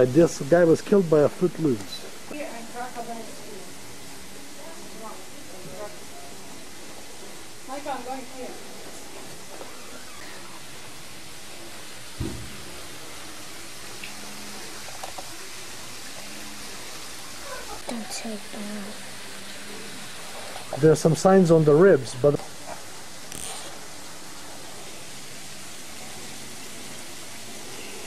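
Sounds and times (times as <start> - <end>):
background hiss: 0.0 - 28.0
low thump: 12.2 - 12.6.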